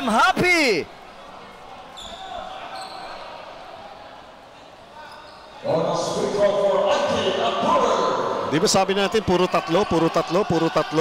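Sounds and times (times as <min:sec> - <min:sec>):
short high squeaks: 0:02.0 - 0:03.2.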